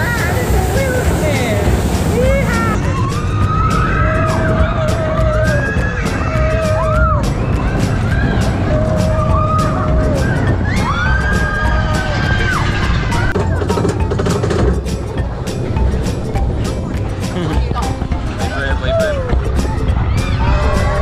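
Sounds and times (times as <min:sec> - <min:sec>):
roller coaster rumble and clatter: 0:00.0 - 0:21.0
riders whooping and screaming: 0:02.2 - 0:13.4, 0:18.8 - 0:21.0.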